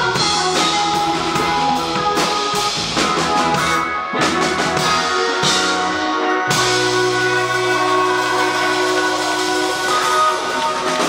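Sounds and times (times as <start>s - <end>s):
bass note: 0.0s - 11.0s
rock band playing chord: 0.0s - 11.0s.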